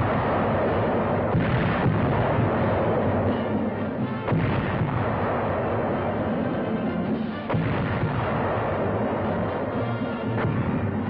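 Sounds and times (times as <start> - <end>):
heavy naval gunfire: 0.0 - 11.0.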